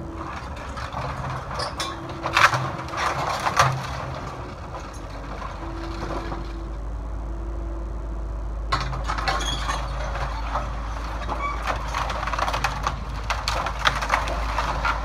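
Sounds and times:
bucket crunching timber debris: 0.0s - 6.6s, 8.8s - 15.0s
excavator diesel engine running: 0.0s - 15.0s
low machine rumble: 0.0s - 15.0s.

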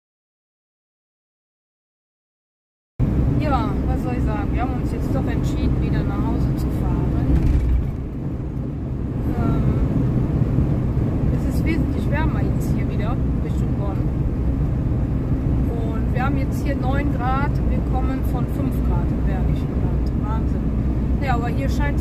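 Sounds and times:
road and engine rumble: 3.0s - 22.0s.

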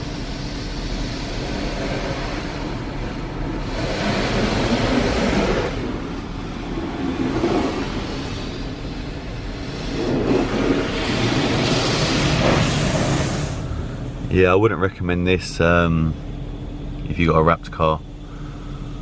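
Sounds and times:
car wash water spray and brushes: 0.0s - 14.7s.

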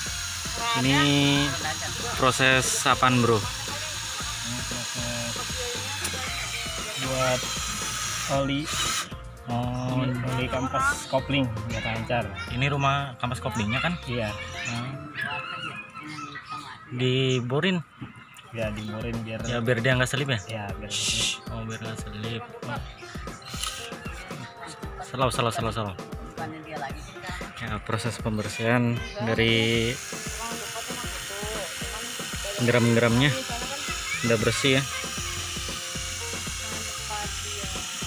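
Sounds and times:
cordless drill boring metal: 0.0s - 9.2s, 23.5s - 23.9s, 29.2s - 38.0s
background music with bass line: 0.0s - 16.0s, 16.9s - 38.0s.

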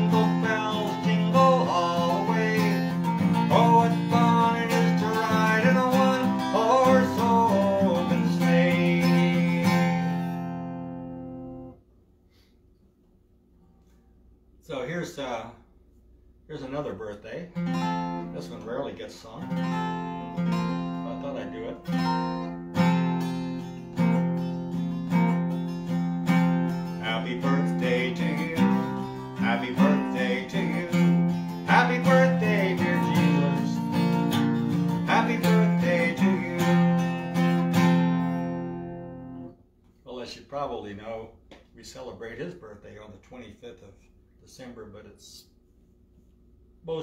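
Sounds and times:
man singing: 0.0s - 10.1s, 27.0s - 34.1s, 34.8s - 37.4s
acoustic guitar strumming: 0.0s - 11.8s, 17.5s - 39.5s.

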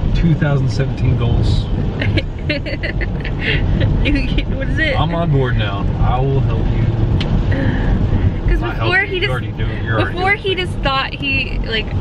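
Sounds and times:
road noise inside a car: 0.0s - 12.0s
voices: 0.2s - 6.9s, 7.5s - 12.0s
woman laughing: 2.0s - 4.7s.

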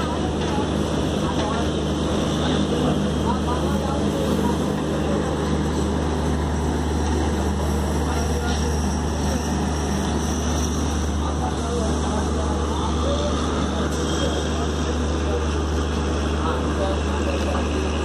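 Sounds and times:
moving train rumble: 0.0s - 18.0s.

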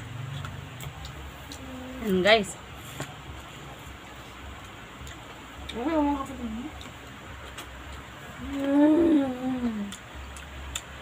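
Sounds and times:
woman humming while chewing: 8.3s - 10.1s.

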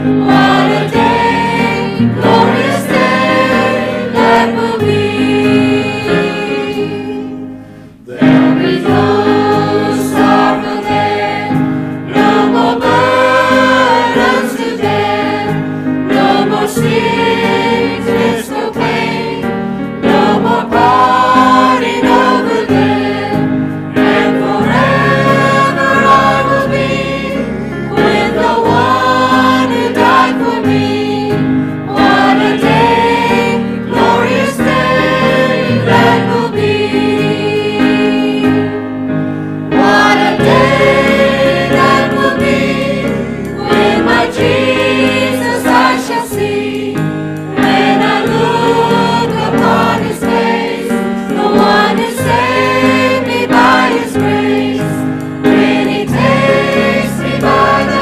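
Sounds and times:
choir singing a hymn: 0.0s - 58.0s.

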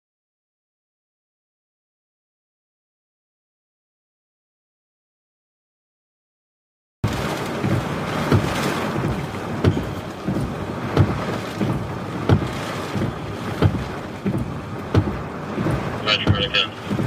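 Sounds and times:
heavy rain pouring: 7.0s - 17.0s
low thump: 7.0s - 17.0s
wind buffeting microphone: 7.0s - 17.0s.

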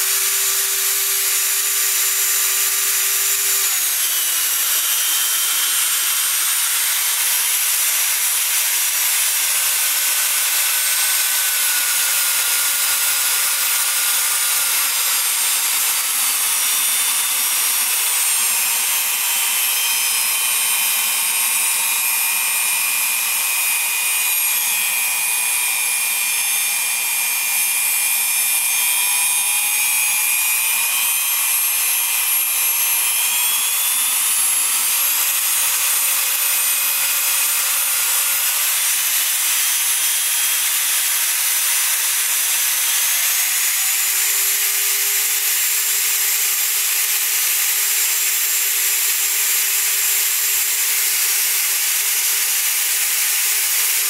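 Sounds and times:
router motor whining: 0.0s - 54.0s.

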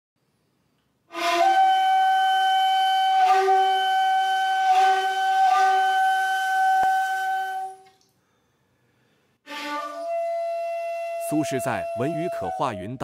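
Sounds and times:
flute-like sustained note: 1.1s - 7.9s, 9.5s - 13.0s.

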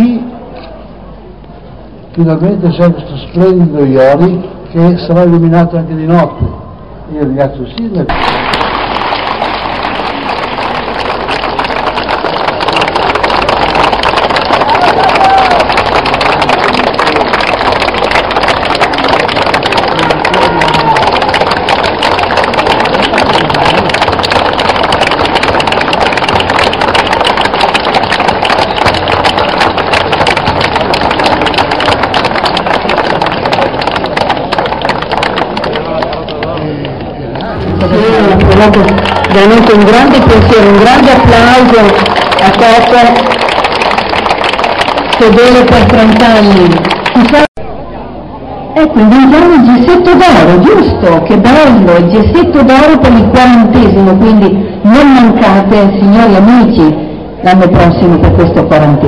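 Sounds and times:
crowd applauding: 8.1s - 47.5s.

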